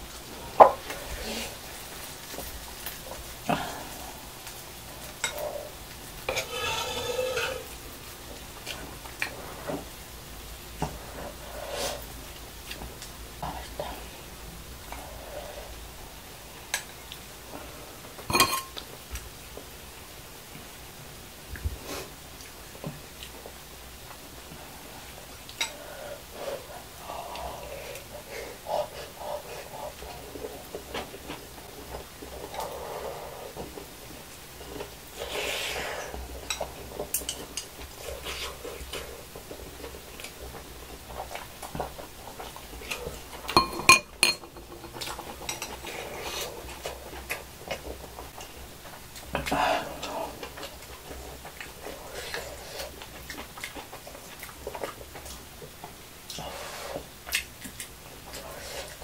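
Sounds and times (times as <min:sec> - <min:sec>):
chewing: 0:00.6 - 0:09.8, 0:21.6 - 0:59.0
utensils clicking on dishes: 0:43.5 - 0:45.9.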